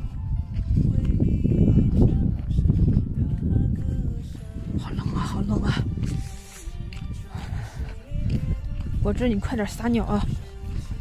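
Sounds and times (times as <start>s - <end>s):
background music: 0.0s - 11.0s
low rumble: 0.0s - 11.0s
woman speaking: 4.8s - 6.0s, 9.0s - 10.4s.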